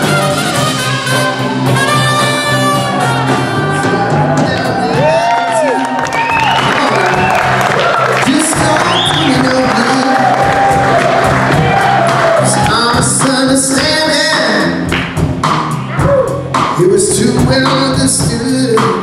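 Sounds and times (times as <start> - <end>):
blues-rock band playing: 0.0 - 19.0.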